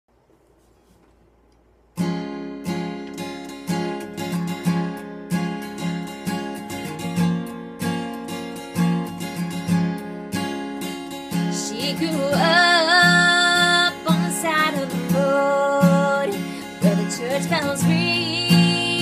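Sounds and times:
acoustic guitar strumming chords: 2.0 - 19.0
woman singing: 11.4 - 19.0.

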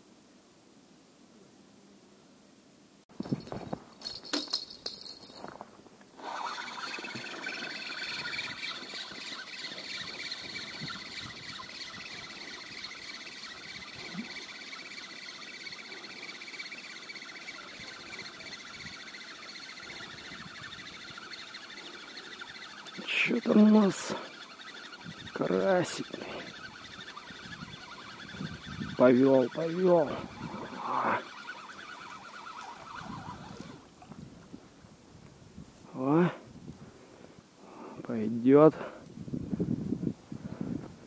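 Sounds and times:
fishing reel whirring: 6.2 - 34.1.

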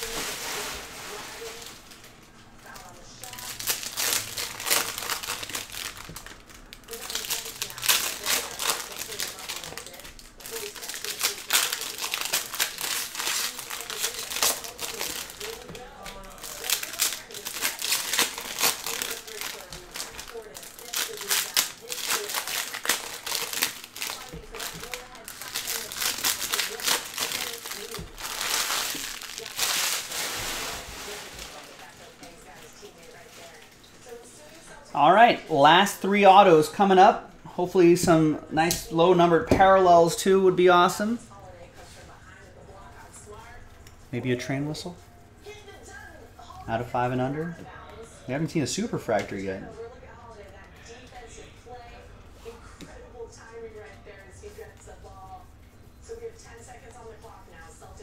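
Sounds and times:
plastic wrappers crinkling and tearing: 0.0 - 34.5.

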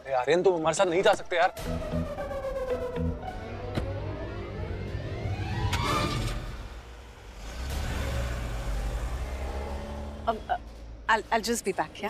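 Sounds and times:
car engine revving: 1.7 - 11.0.

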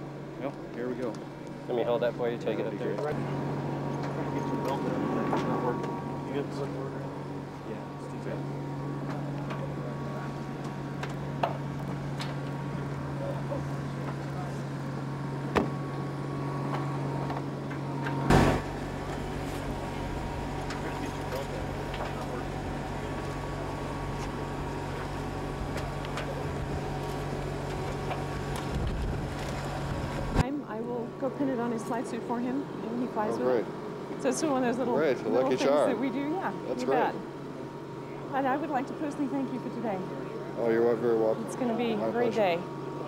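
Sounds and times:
low machine hum: 0.0 - 43.0.

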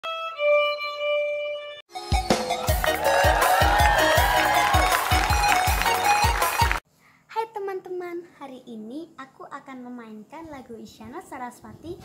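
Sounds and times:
violin bowing notes: 0.0 - 6.8.

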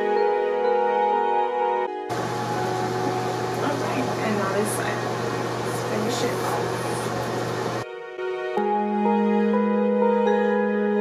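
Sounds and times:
even hiss: 2.1 - 7.8.

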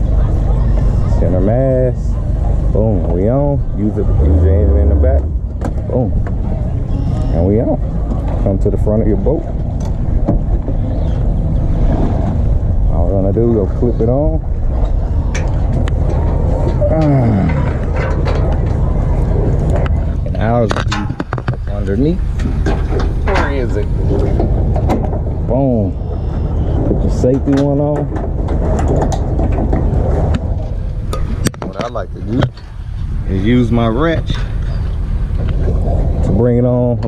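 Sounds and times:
outboard motor idling: 0.0 - 37.0
wind on microphone: 0.0 - 37.0.

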